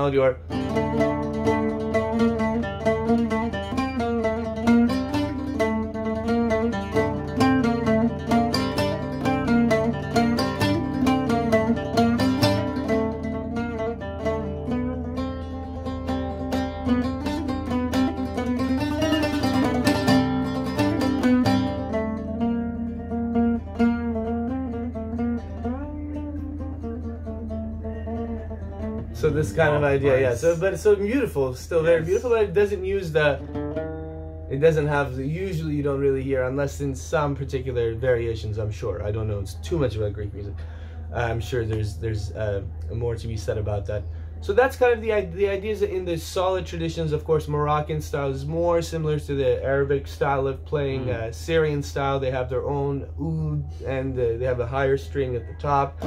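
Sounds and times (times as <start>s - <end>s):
oud picked melody: 0.0s - 56.0s.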